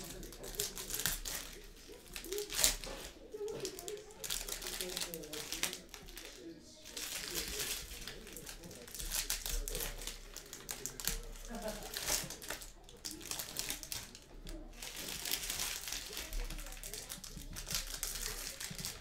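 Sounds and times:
foil wrappers crinkling and tearing: 0.0s - 19.0s.

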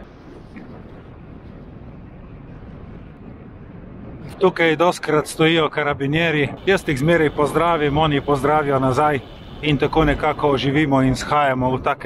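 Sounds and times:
wind rushing past microphone: 0.0s - 12.0s
bicycle tyre hum: 6.6s - 11.0s.

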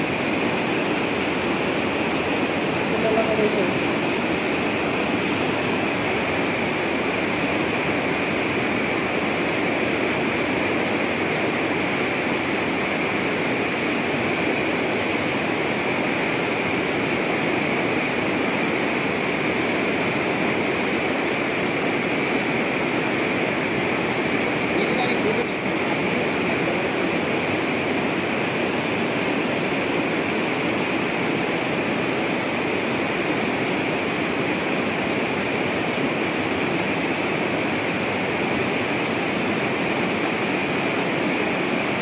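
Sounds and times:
water rushing and splashing: 0.0s - 42.0s.

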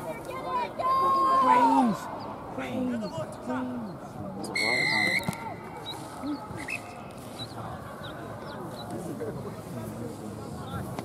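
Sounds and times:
players shouting: 0.1s - 6.8s
referee's whistle blast: 4.5s - 5.4s.

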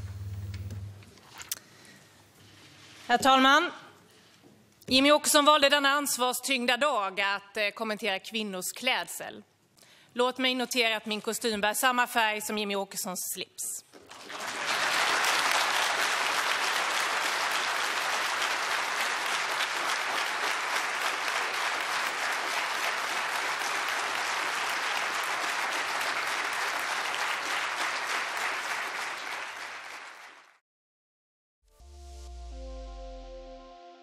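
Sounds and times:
audience applauding: 14.0s - 30.6s.

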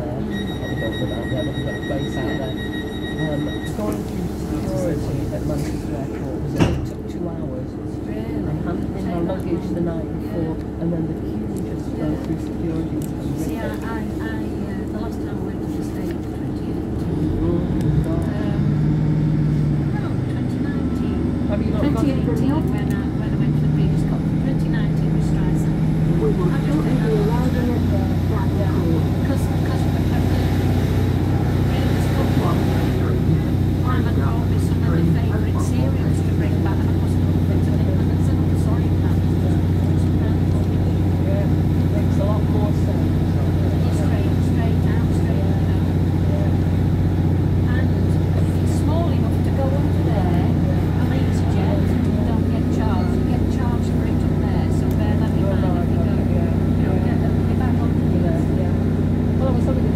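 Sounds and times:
diesel engine drone: 0.0s - 59.9s
indistinct passenger chatter: 0.0s - 59.9s
train running on track: 0.0s - 59.9s.

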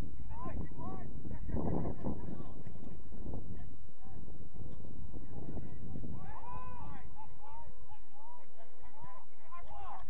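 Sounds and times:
wind rumbling on microphone: 0.0s - 10.0s
distant drawn-out shout: 6.2s - 10.0s.

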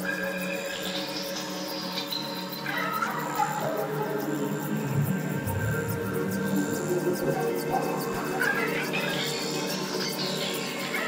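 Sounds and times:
synthesizer drones: 3.2s - 10.9s
high wavering pitch glides: 4.4s - 8.0s.

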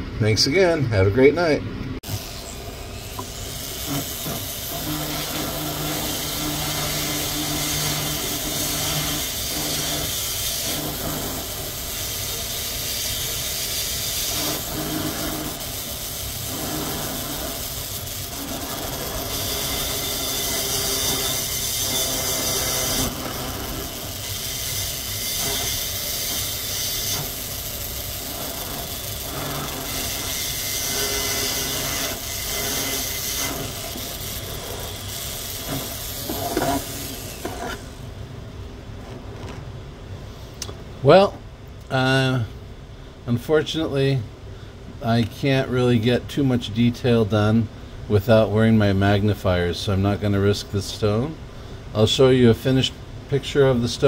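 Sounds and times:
rotary tool grinding stone hiss: 2.1s - 38.0s.

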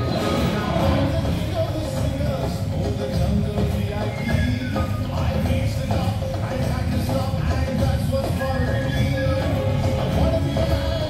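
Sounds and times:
fountain show music: 0.0s - 11.0s.

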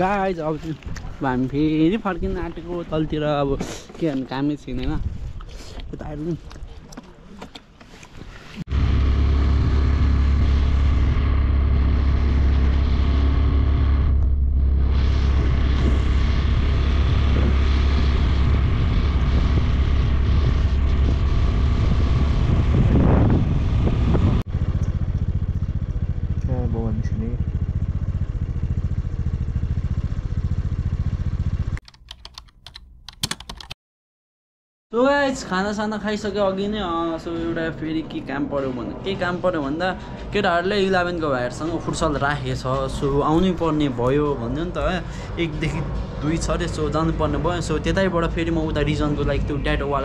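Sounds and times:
wind rushing over microphone: 4.6s - 5.5s, 8.7s - 24.8s
motorcycle engine running: 8.7s - 31.8s.

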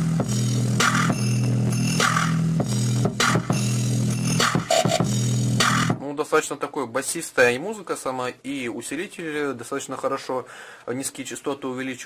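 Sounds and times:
bass-heavy dance music: 0.0s - 6.0s.

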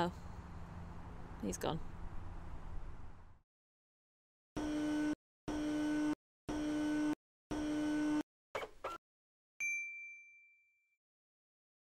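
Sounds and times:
bright ringing ding: 9.6s - 11.0s.

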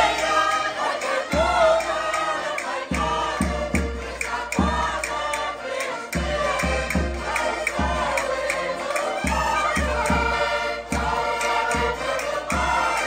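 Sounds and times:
button accordions playing: 0.0s - 13.0s
group of voices singing: 0.0s - 13.0s
sharp percussive clicks: 0.2s - 13.0s.

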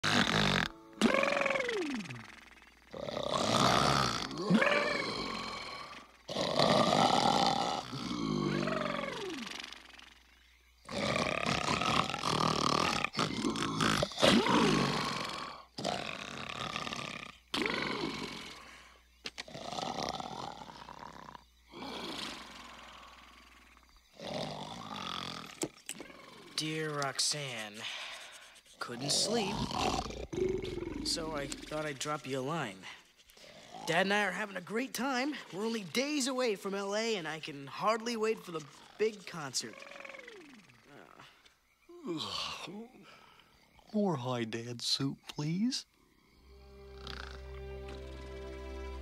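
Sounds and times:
cartoon snoring with whistling: 0.0s - 26.8s, 27.6s - 34.2s, 46.7s - 47.7s.

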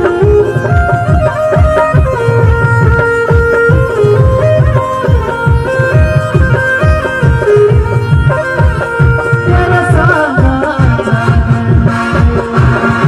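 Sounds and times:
driving drum beat: 0.0s - 13.0s
folk melody of held notes: 0.0s - 13.0s.

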